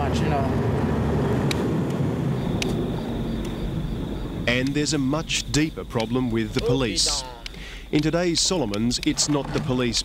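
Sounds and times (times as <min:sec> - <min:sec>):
truck engine and road rumble: 0:00.0 - 0:10.0.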